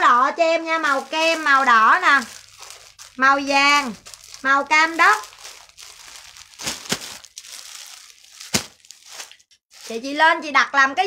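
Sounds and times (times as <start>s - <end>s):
plastic bags crinkling: 0.0s - 10.2s.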